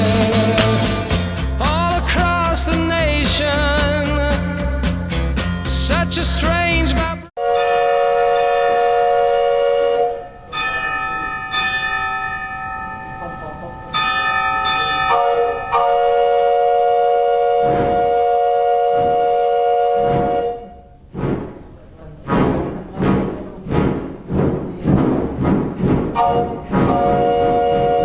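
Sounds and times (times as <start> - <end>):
metal bells ringing: 7.5 - 9.2, 10.2 - 16.2.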